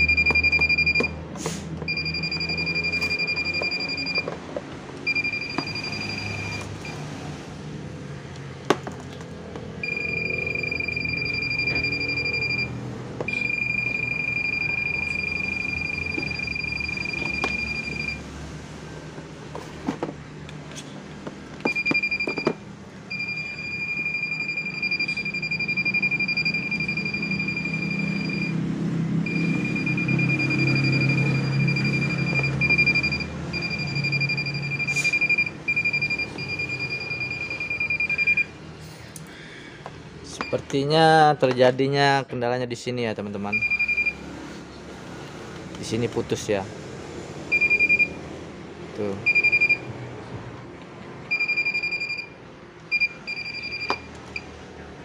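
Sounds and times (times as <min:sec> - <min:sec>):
electrical tester high beep: 0:00.0 - 0:01.2, 0:01.9 - 0:04.3, 0:05.0 - 0:07.0, 0:09.8 - 0:18.3, 0:21.6 - 0:28.6, 0:29.2 - 0:38.6, 0:43.5 - 0:44.2, 0:47.5 - 0:48.2, 0:49.2 - 0:49.9, 0:51.3 - 0:54.5.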